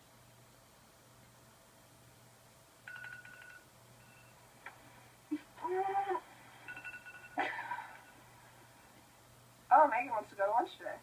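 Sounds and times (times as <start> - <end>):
woman groaning sleepily: 5.3 - 6.4.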